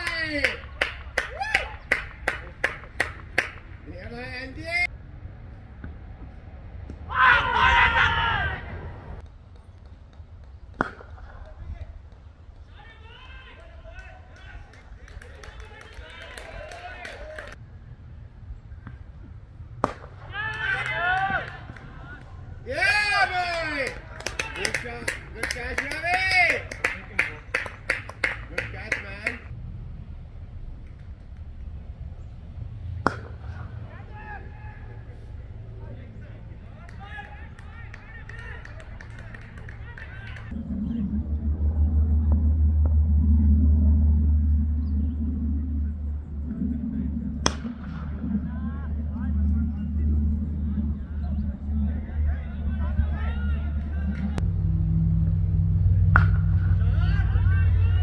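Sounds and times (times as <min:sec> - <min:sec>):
players shouting: 0:07.0 - 0:09.2, 0:12.6 - 0:17.6, 0:19.8 - 0:29.4, 0:33.4 - 0:40.6, 0:50.9 - 0:54.4, 0:56.2 - 0:58.0
low rumble: 0:29.4 - 0:58.0
cricket bat striking ball: 0:33.0 - 0:33.5, 0:56.1 - 0:56.6.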